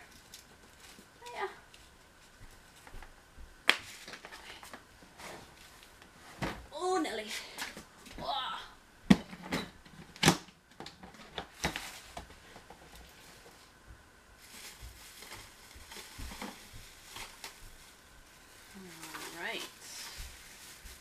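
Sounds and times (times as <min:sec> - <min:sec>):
person speaking: 0:06.7 - 0:07.6, 0:18.7 - 0:20.2.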